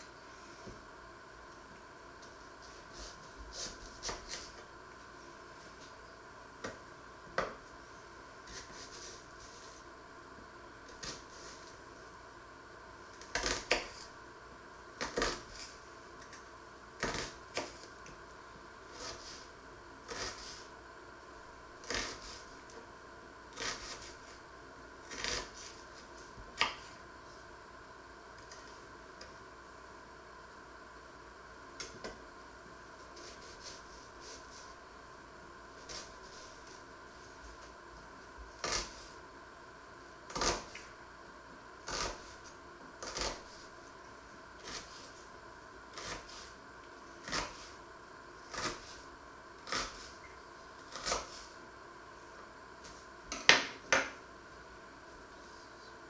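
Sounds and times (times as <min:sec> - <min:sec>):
knife chopping on wooden board: 0:26.6 - 0:26.9, 0:43.0 - 0:43.5, 0:50.9 - 0:51.4, 0:53.3 - 0:54.2.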